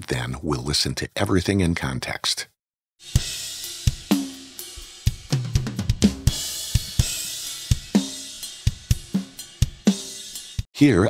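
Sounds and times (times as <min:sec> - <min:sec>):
hi-hat and cymbal wash: 0:03.0 - 0:10.7
tom drum hits: 0:03.1 - 0:09.9
kick and snare drum strikes: 0:03.1 - 0:10.4.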